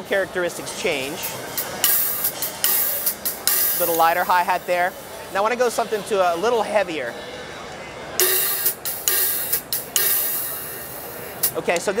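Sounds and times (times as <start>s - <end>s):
hi-hat strokes: 0.8s - 5.1s, 8.2s - 11.7s.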